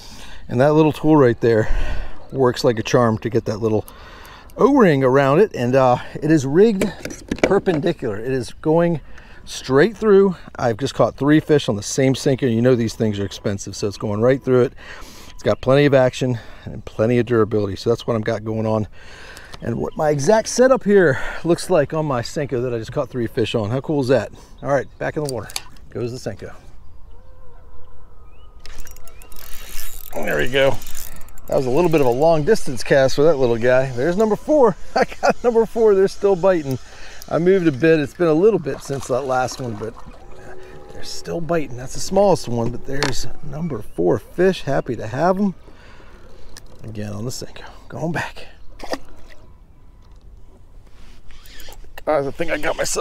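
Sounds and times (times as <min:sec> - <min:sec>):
bird chirp: 0:12.6 - 0:20.4, 0:23.0 - 0:37.8, 0:39.5 - 0:53.0
spinning reel clicking: 0:28.7 - 0:32.2.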